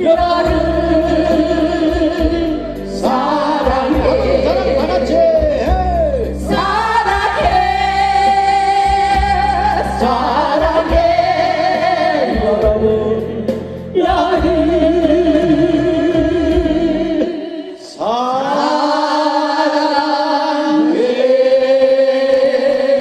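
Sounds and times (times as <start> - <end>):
group of men and women singing: 0.0 - 23.0.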